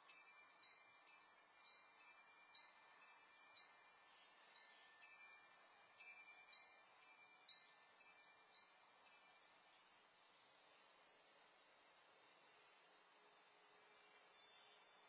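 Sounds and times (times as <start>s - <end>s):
wind chime tinkling: 0.0s - 10.9s.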